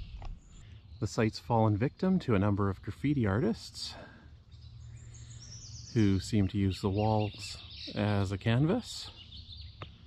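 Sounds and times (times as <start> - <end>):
faint outdoor background noise: 0.0 - 10.0.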